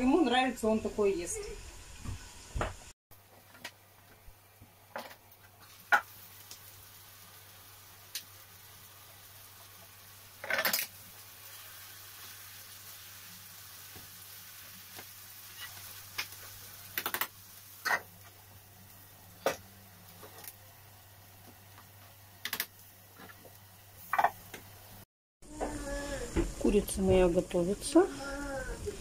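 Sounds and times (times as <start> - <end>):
food sizzling in a pan: 0.0 - 29.0.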